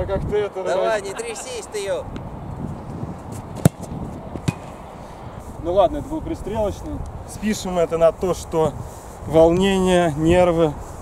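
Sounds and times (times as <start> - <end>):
football kicked hard: 3.6 - 4.8.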